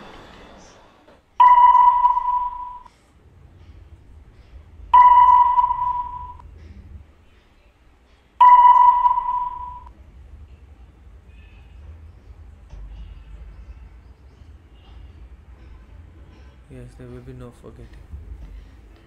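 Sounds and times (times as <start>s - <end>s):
electronic pitched tone: 1.4s - 2.9s, 5.0s - 6.4s, 8.4s - 9.9s.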